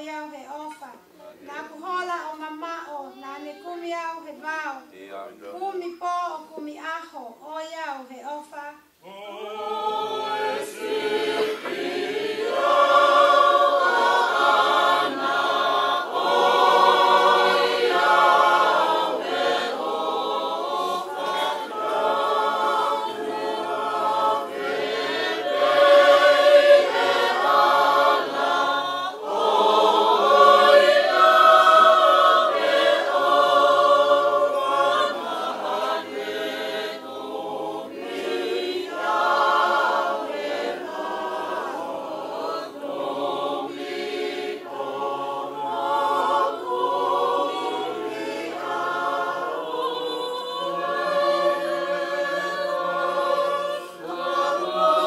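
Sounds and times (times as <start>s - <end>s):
choir singing in harmony: 9.0s - 55.0s.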